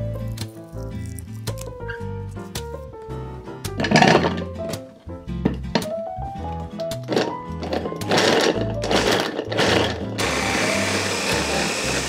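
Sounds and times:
hand blender chopping: 8.0 - 12.0.

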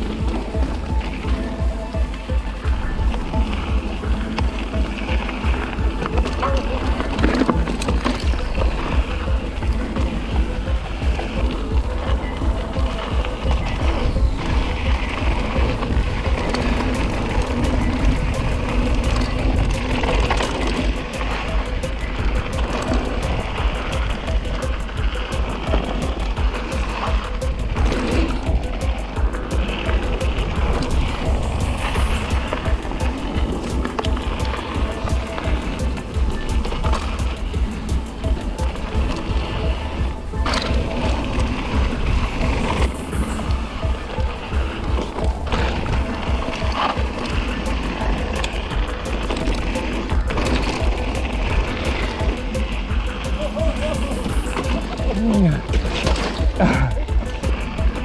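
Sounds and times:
bike rattling: 0.0 - 58.0
bike tyres rolling on dirt: 0.0 - 58.0
music: 0.0 - 58.0
wind buffeting microphone: 0.0 - 58.0.

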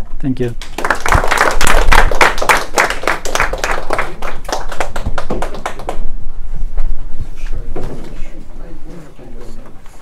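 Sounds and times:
audience applauding: 0.6 - 6.1.

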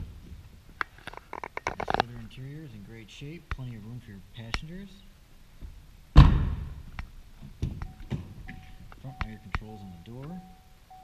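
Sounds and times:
clicks and knocks of handling noise: 0.8 - 2.2.

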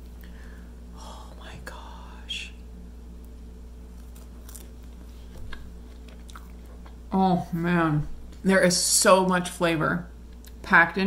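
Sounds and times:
person chewing bread: 3.2 - 7.1.

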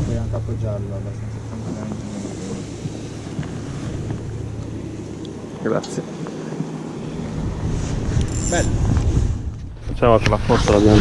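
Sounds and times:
steady low hum: 0.0 - 11.0
wind buffeting microphone: 0.0 - 11.0.

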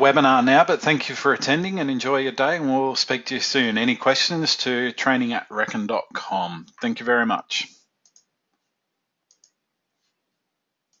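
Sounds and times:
computer clicking: 8.0 - 8.7, 9.3 - 9.6.

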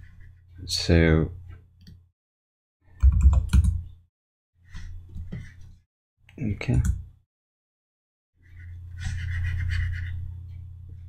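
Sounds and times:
steady low hum: 8.4 - 11.0.

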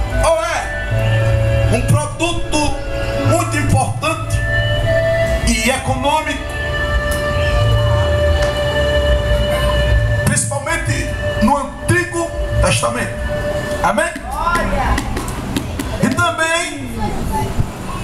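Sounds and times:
band playing soft sustained chord: 0.0 - 17.0
man's voice: 0.1 - 0.9, 1.7 - 4.6, 5.4 - 6.5, 10.2 - 14.7, 16.0 - 16.9.

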